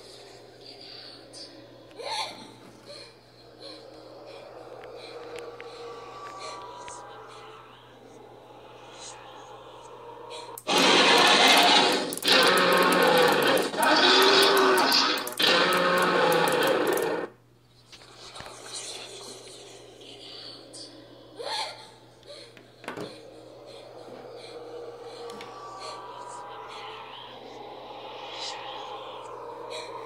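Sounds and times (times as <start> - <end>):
harsh noise with moaning voice: 0.0 - 30.0.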